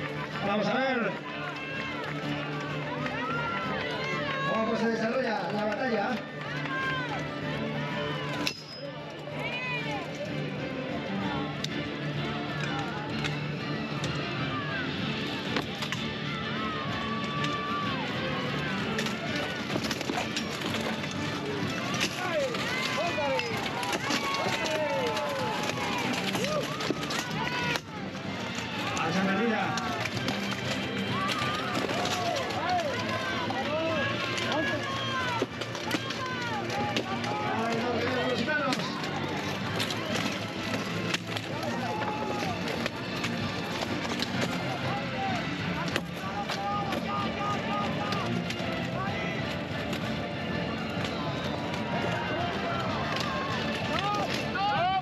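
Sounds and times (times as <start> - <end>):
people shouting and cheering: 0.0 - 55.0.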